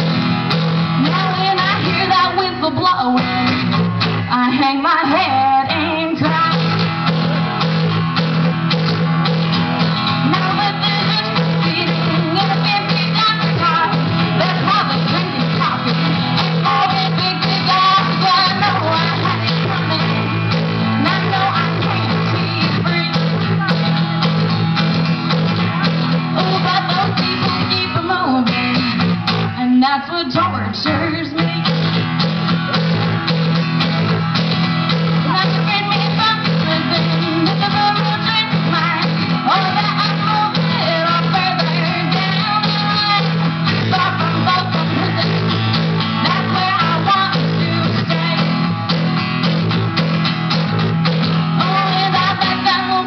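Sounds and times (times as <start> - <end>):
acoustic guitar strumming: 0.0 - 53.0.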